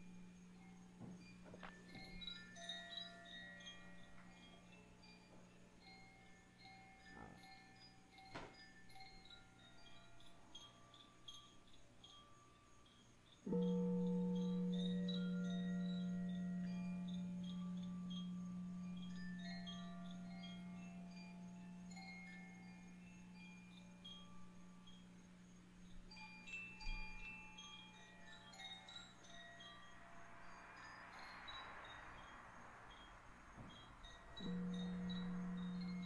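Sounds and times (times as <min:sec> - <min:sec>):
deep sustained tone: 0:13.5 - 0:25.1, 0:34.2 - 0:36.0.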